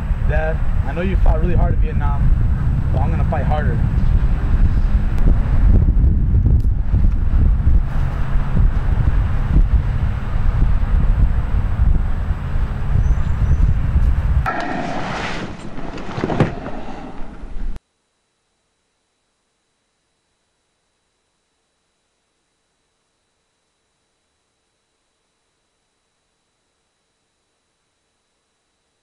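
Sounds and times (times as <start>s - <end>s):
wind buffeting microphone: 0.0s - 17.8s.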